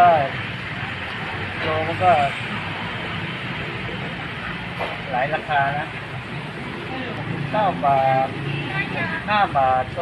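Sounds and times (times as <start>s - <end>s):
man speaking: 1.6s - 2.4s, 7.0s - 8.5s, 9.2s - 10.0s.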